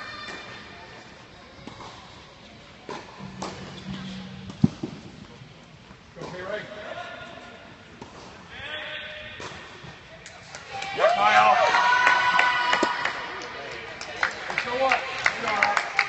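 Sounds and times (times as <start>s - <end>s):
spectators shouting and cheering: 10.7s - 13.2s.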